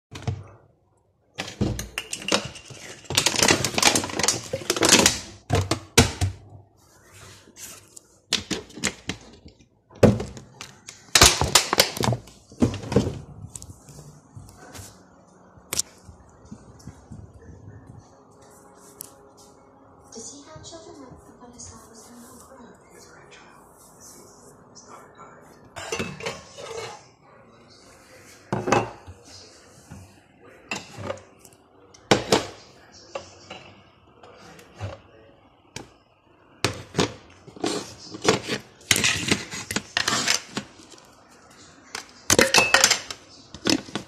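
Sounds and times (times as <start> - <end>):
glasses and dishes clinking: 1.5 - 3.1, 25.8 - 27.0, 42.3 - 43.2.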